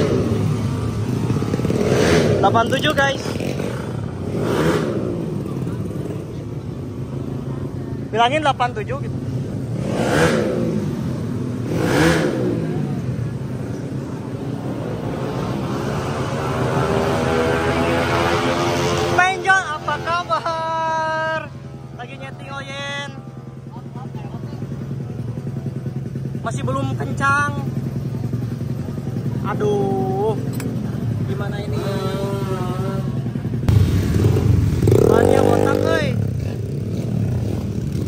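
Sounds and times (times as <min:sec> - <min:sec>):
motorcycle engine running: 0:00.0 - 0:15.4, 0:20.2 - 0:38.0
small motorcycle engine idling: 0:21.7 - 0:33.8.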